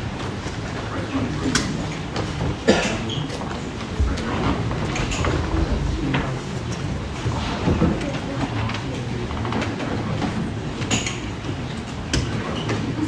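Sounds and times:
crowd murmuring: 0:03.6 - 0:09.6
footsteps: 0:04.0 - 0:08.4.

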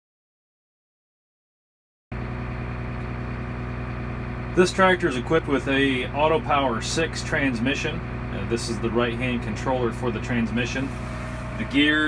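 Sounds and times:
tractor diesel engine idling: 0:02.2 - 0:12.0.

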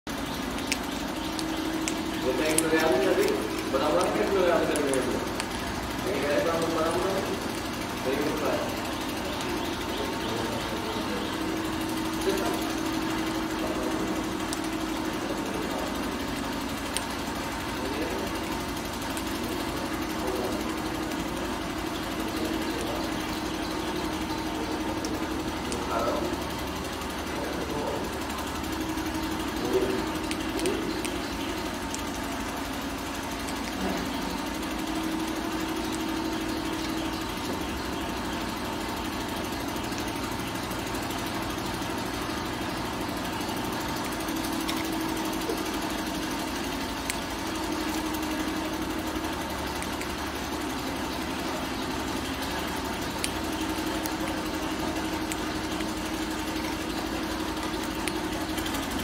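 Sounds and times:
machine hum: 0:00.0 - 0:59.0
faint clicks: 0:00.1 - 0:59.0.

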